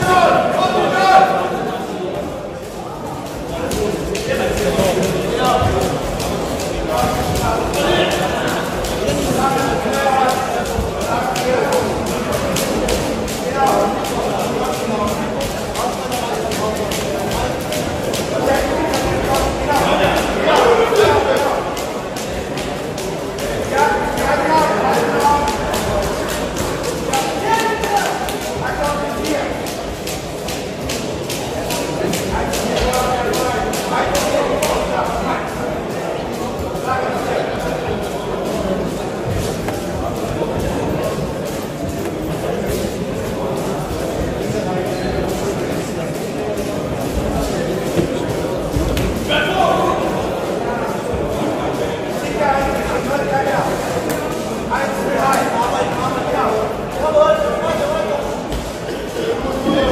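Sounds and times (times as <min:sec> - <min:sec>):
footwork on ring canvas: 0:02.2 - 0:59.9.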